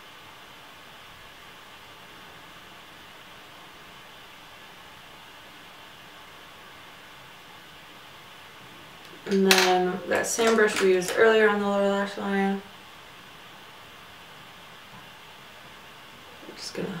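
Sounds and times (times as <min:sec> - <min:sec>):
faint room tone hiss: 0:00.0 - 0:17.0.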